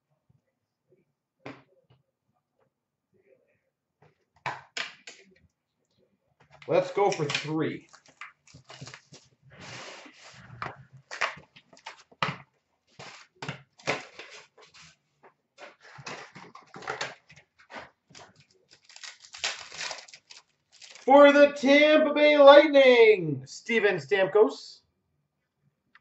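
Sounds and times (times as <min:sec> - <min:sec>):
foil packs rustling and crinkling: 0:07.8 - 0:10.4, 0:12.9 - 0:15.0, 0:15.6 - 0:21.1.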